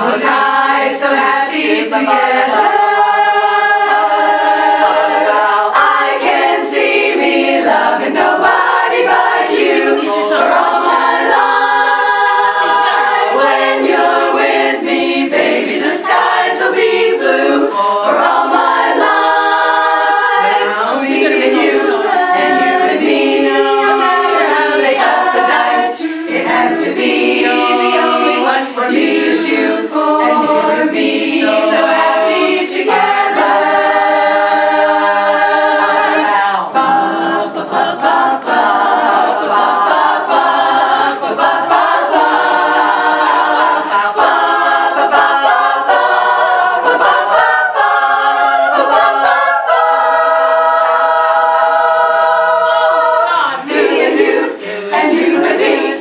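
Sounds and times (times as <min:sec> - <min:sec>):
women's chorus singing a cappella: 0:00.0 - 0:56.0.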